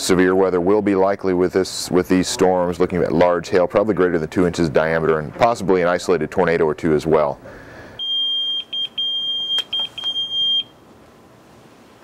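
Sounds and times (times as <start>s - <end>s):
pager beeping: 8.0s - 10.7s.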